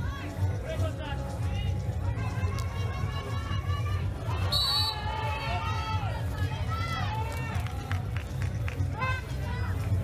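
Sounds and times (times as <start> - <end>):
low rumble of venue noise: 0.0 - 10.0
spectators and coaches shouting: 2.0 - 7.9.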